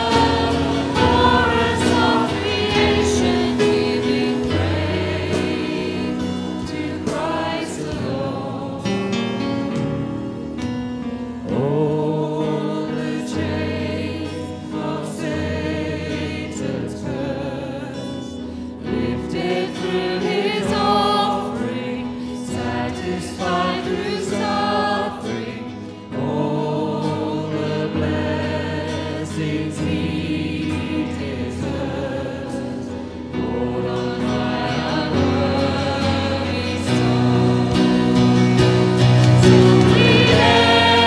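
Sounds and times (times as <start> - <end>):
congregation singing: 0.0 - 41.0
worship band playing: 0.0 - 41.0.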